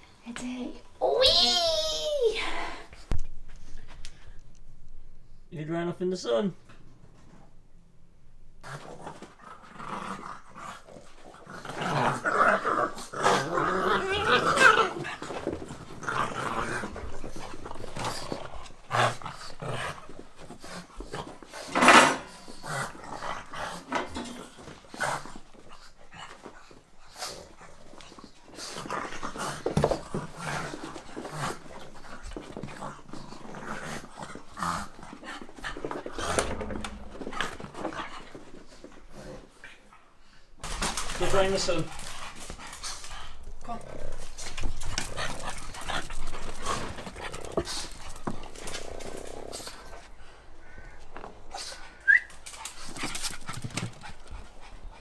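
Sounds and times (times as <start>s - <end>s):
dogs growling while play-fighting: 8.6s - 41.2s, 41.9s - 55.0s.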